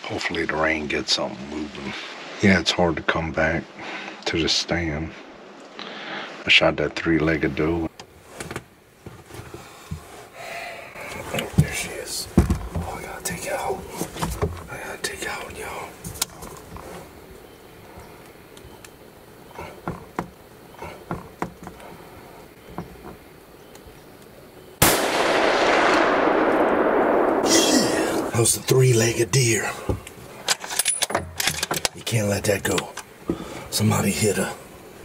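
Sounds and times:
rifle shot: 24.8s - 28.3s.

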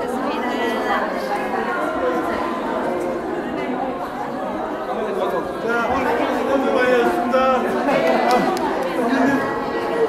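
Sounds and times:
babble of overlapping voices: 0.0s - 10.0s.

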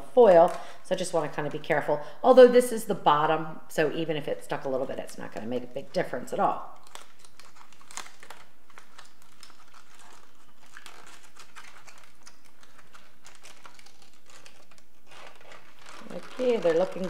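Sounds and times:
aluminium foil crinkling: 5.6s - 17.0s.

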